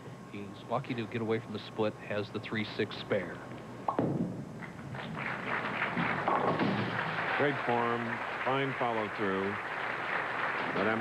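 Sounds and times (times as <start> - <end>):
bowling ball rolling: 3.9 - 7.4
bowling pins crashing: 3.9 - 7.4.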